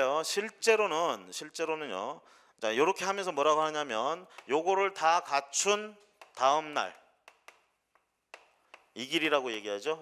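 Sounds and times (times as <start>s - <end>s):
chalk tapping on blackboard: 4.3s - 4.6s, 6.0s - 6.6s, 7.2s - 9.0s.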